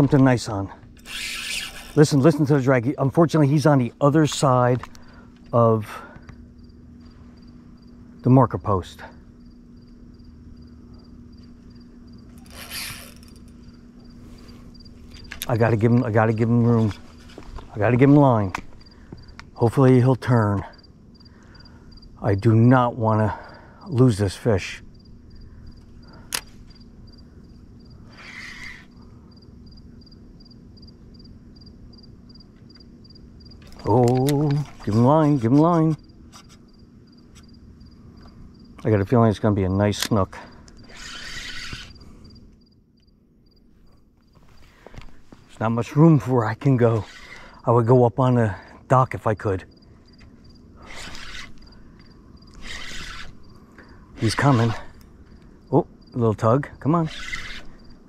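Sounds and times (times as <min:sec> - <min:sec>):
cricket chirping: 0:00.0 - 0:17.7, 0:18.3 - 0:44.9, 0:48.6 - 0:58.0
low steady hum: 0:00.0 - 0:58.0
rasping hisses: 0:47.0 - 0:47.6, 0:50.8 - 0:51.8, 0:52.5 - 0:53.4.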